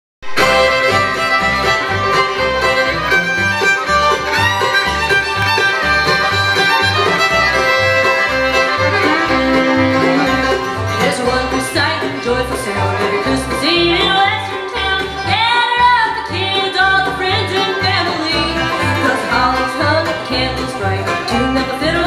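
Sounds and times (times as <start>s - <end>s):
bluegrass band playing: 0.2s - 22.0s
bowed fiddle: 0.2s - 22.0s
upright bass walking: 0.2s - 22.0s.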